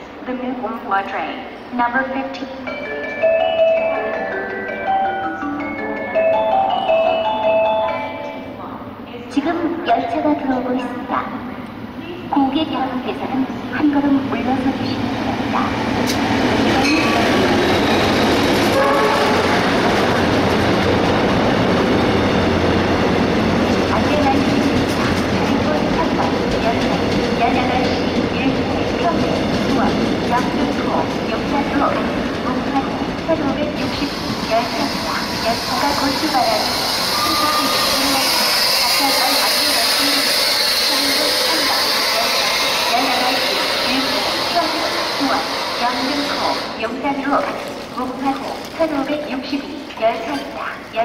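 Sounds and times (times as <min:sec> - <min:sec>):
train coaches rolling to a stop: 0:02.3 - 0:51.0.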